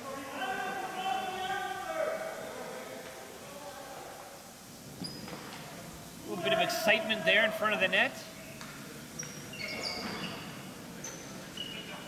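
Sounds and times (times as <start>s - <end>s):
players shouting in a gymnasium: 0.0s - 4.6s, 6.0s - 12.0s.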